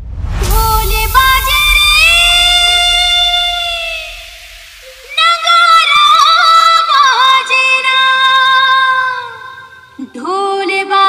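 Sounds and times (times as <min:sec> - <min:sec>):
high voice wavering note: 0:00.6 - 0:10.1.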